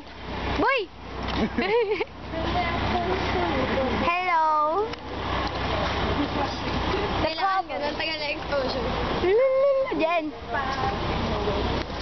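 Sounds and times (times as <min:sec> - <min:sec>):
outdoor rumble and hiss: 0:00.0 - 0:12.0
people talking: 0:01.6 - 0:12.0.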